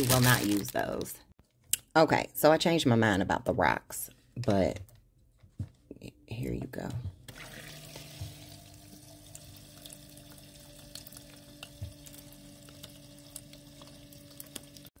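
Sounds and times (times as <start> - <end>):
low pump hum: 7.1 - 14.9
small water drips: 7.3 - 14.9
water trickling over rock: 7.3 - 14.9.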